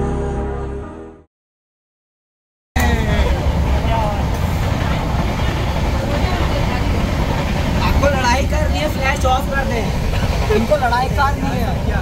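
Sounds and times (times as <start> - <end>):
people talking: 2.8 - 12.0.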